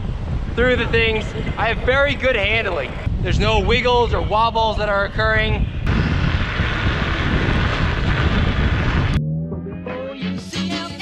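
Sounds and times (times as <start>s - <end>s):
road rumble: 0.0s - 4.0s, 5.6s - 9.2s
wind rushing over microphone: 0.0s - 9.2s
upbeat background music: 9.2s - 11.0s.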